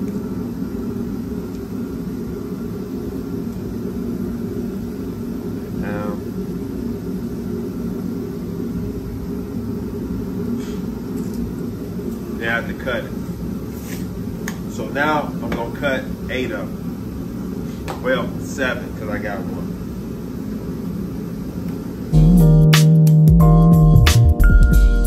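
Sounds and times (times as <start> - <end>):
low machine drone: 0.0 - 25.0.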